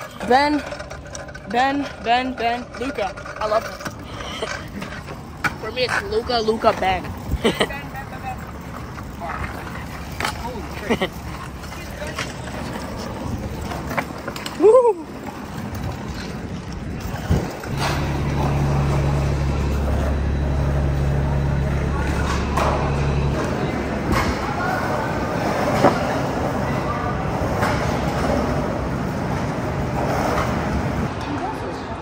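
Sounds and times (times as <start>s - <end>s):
wheels rolling over concrete: 0.0s - 32.0s
bus diesel engine running: 17.3s - 25.1s.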